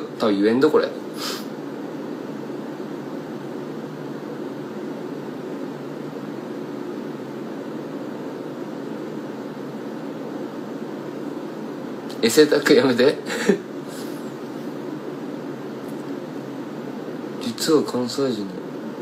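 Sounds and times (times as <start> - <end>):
low hum with hiss: 0.0 - 19.0.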